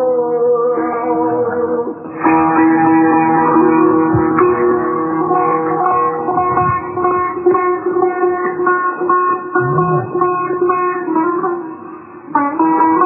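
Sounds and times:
plucked lute melody: 0:00.0 - 0:13.0.

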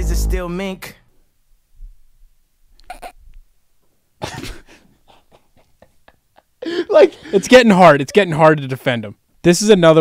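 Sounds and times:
man laughing breathily: 0:04.2 - 0:07.6.

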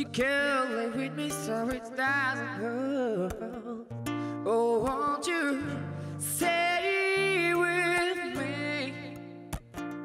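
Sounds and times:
man singing wordless melody: 0:00.0 - 0:09.6
acoustic guitar low notes: 0:00.0 - 0:10.0.

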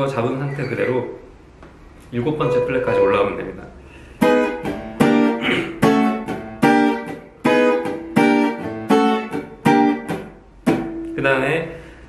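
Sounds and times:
acoustic guitar chords ringing: 0:02.2 - 0:12.0.

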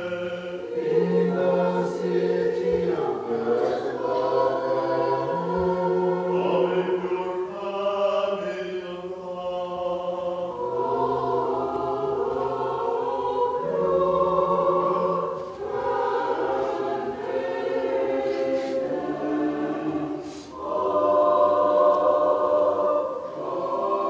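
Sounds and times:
choir singing a hymn unaccompanied: 0:00.0 - 0:24.0.

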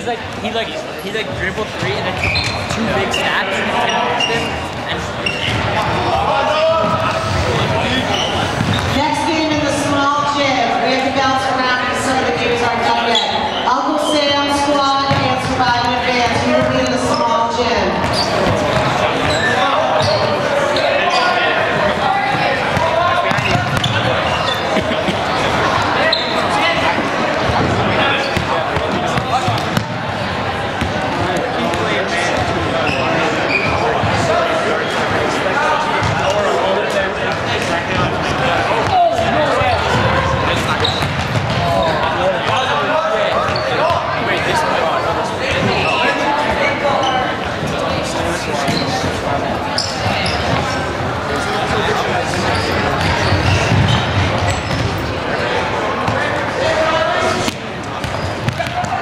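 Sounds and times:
players calling and shouting: 0:00.0 - 0:59.0.

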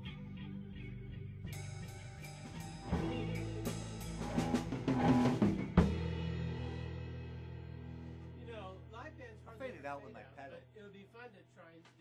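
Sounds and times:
rock band playing: 0:00.8 - 0:08.5
rapid drum fill: 0:02.3 - 0:07.0.

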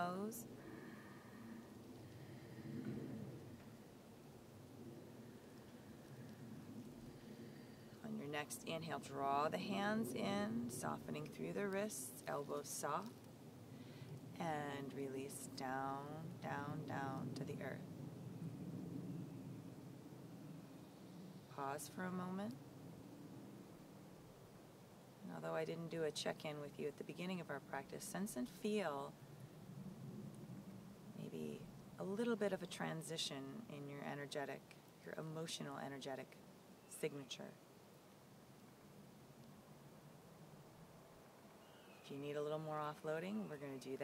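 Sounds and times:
low background rumble: 0:00.0 - 0:44.0.

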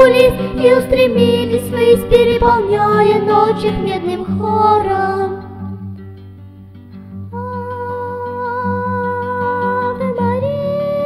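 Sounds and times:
plucked acoustic guitar: 0:00.0 - 0:11.0.

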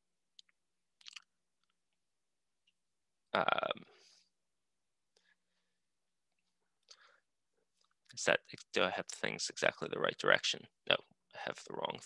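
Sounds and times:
man saying um: 0:03.4 - 0:03.8.

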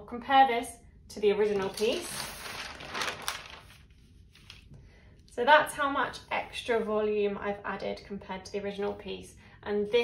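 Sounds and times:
paper rustling and crinkling: 0:01.4 - 0:04.8.

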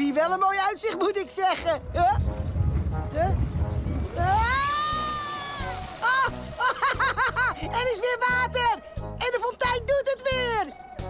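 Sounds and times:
whooping glide: 0:03.2 - 0:07.4
water gushing hiss: 0:04.1 - 0:07.6.

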